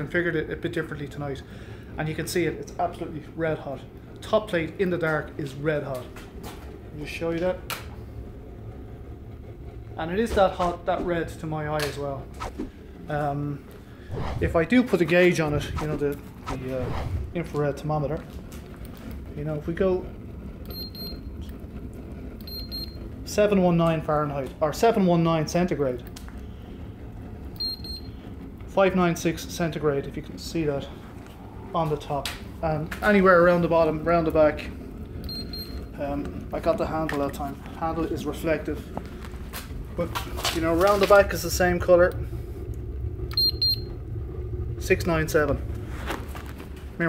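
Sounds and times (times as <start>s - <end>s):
low steady rumble: 0.0s - 47.0s
thermometer beeping: 20.7s - 21.3s, 22.4s - 23.0s, 27.6s - 28.2s, 35.2s - 35.9s, 43.3s - 44.0s.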